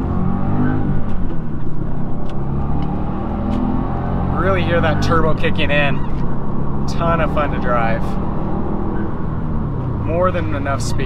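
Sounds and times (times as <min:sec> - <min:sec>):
car engine under throttle: 0:00.0 - 0:11.0
low road rumble: 0:00.0 - 0:11.0.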